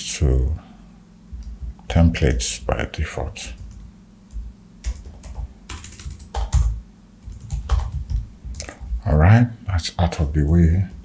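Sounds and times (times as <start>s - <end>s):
computer keyboard typing: 3.6s - 8.9s.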